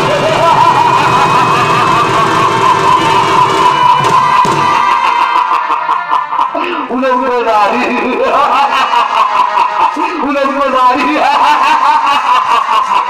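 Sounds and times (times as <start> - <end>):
drums: 0.0 - 5.7
shehnai melody: 0.0 - 6.8.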